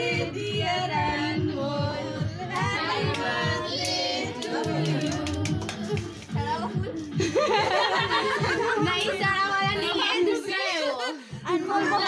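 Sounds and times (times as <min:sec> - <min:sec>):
girls singing along loudly: 0:00.0 - 0:07.0
music with steady beat: 0:00.0 - 0:10.4.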